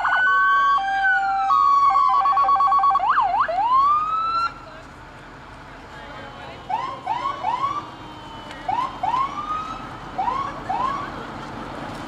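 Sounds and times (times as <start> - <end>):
siren whoops: 0.0 - 4.6, 6.7 - 11.2
street noise: 0.0 - 12.0.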